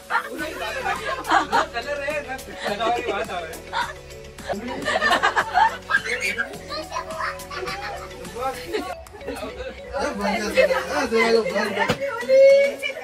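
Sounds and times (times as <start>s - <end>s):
background music held notes: 0.0s - 13.0s
people talking and calling: 0.0s - 13.0s
child's voice: 6.6s - 8.1s.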